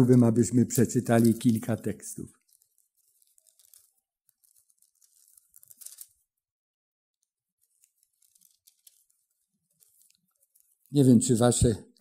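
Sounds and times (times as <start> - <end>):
thin pages being turned: 0.0 - 6.4, 7.2 - 12.0.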